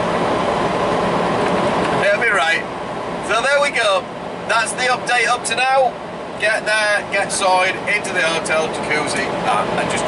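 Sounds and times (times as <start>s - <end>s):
truck engine and road noise: 0.0s - 10.0s.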